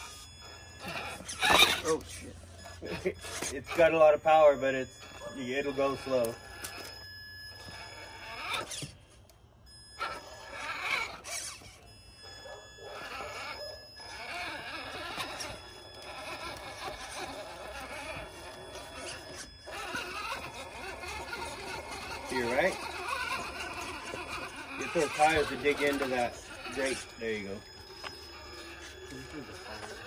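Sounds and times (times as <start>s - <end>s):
electric motor whining: 0.0s - 30.0s.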